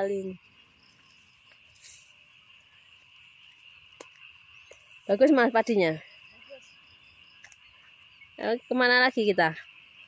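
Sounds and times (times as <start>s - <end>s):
insects chirping: 0.0s - 10.0s
soft rustle: 1.1s - 2.2s.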